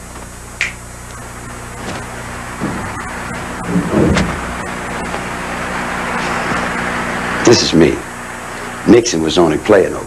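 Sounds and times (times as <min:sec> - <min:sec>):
low hum: 0:00.0 - 0:08.9
recording hiss: 0:00.0 - 0:10.0.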